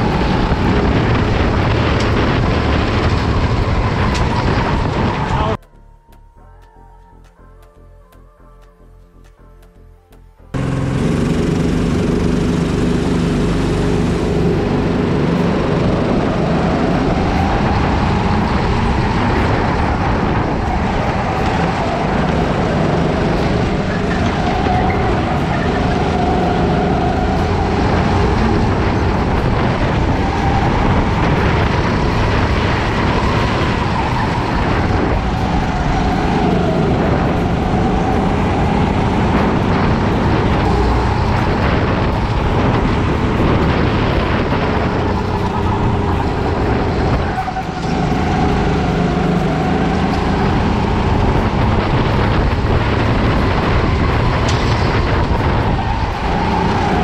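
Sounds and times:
kart engine revving: 0.0s - 5.6s, 10.6s - 57.0s.

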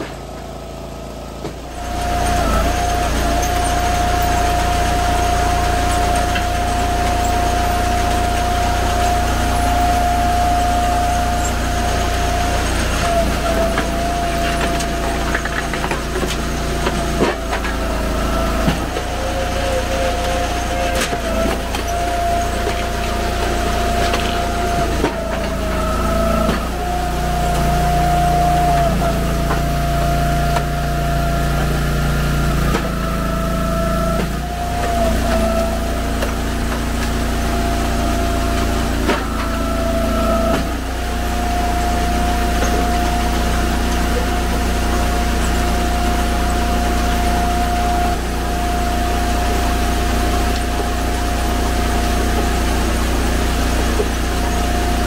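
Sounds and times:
log splitter engine and pump humming: 0.0s - 55.0s.

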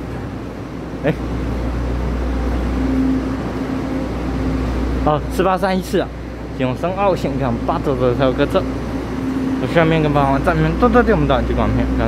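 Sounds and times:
low rumble with faint hum: 0.0s - 12.0s.

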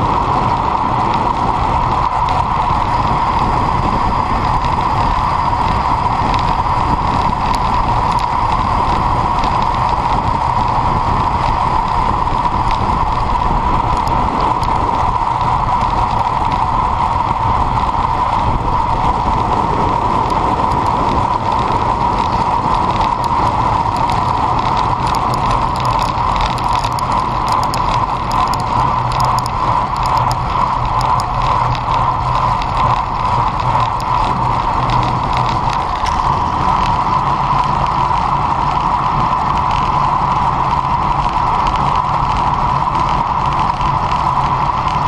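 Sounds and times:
bicycle clicks: 0.0s - 45.0s
bicycle freehub ratchet ticking: 0.0s - 45.0s
wind and tyre noise: 0.0s - 45.0s.

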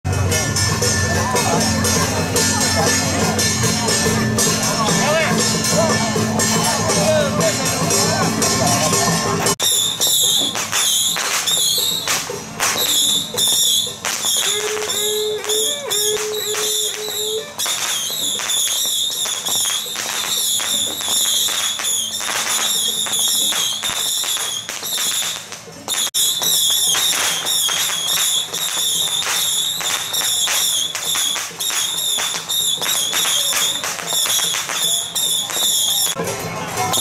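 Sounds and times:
drums gongs and cymbals: 0.0s - 37.0s.

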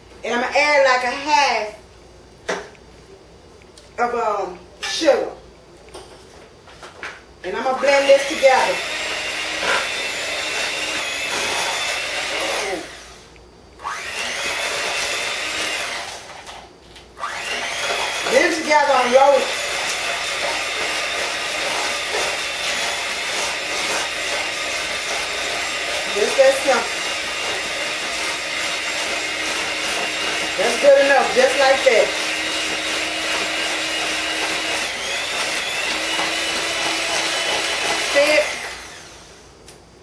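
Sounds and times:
electric hand mixer running: 7.8s - 16.4s, 17.2s - 39.5s.

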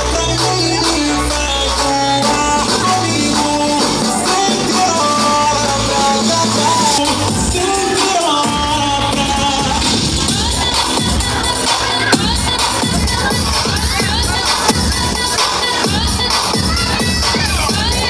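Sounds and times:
crowd cheering and shouting: 0.0s - 18.0s
loud dance music: 0.0s - 18.0s.

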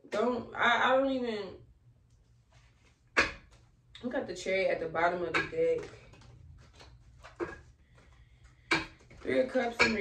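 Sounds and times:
cards shuffling: 5.8s - 9.2s.

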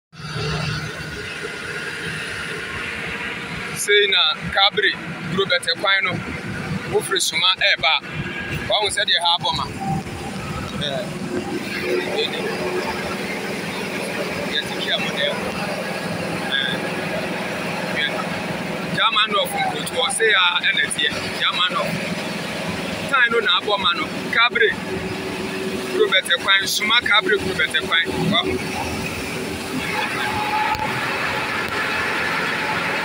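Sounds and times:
truck engine and road noise: 0.1s - 33.0s
rush of water noise: 0.2s - 33.0s.

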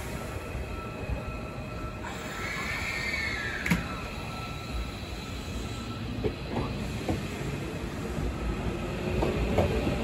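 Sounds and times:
electric train rumble: 0.0s - 10.0s.

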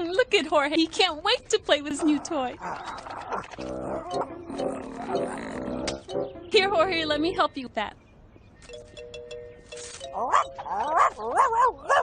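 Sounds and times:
cartoon dog muffled grunts: 2.8s - 6.0s
background music: 3.6s - 7.7s, 8.7s - 11.5s.

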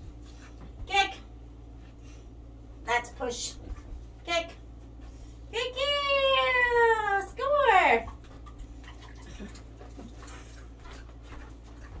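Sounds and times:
low room hum: 0.0s - 12.0s
pig chewing: 8.1s - 12.0s.

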